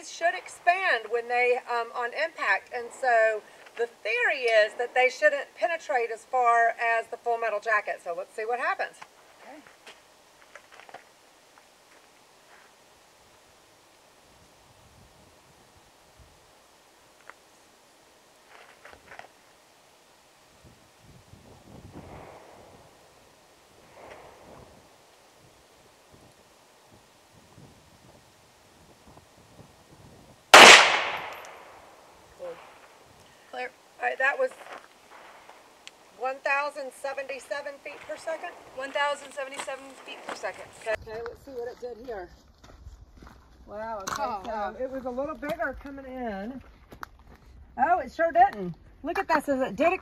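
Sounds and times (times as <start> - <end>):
pistol shot: 30.6 - 31.8.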